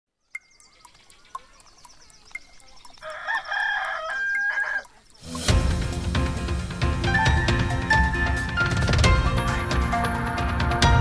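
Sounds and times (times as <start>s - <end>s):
clock ticking: 0.4s - 5.9s
rooster crowing: 3.0s - 4.9s
loud music: 5.3s - 11.0s.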